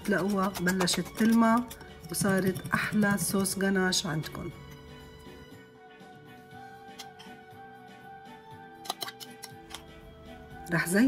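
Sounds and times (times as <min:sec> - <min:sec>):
soft background music: 0:00.0 - 0:11.0
metal spoon clicking on glass bowl: 0:08.8 - 0:09.8.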